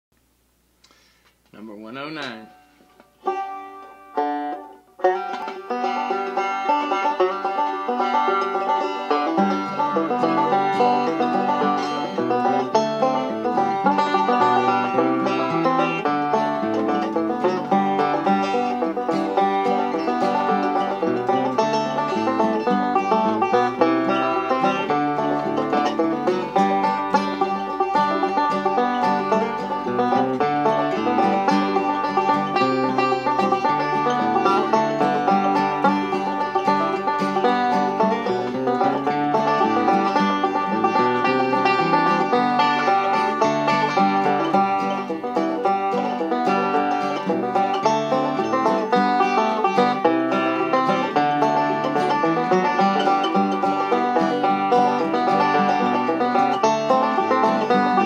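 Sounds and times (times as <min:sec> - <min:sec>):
banjo picking: 0:00.9 - 0:58.0.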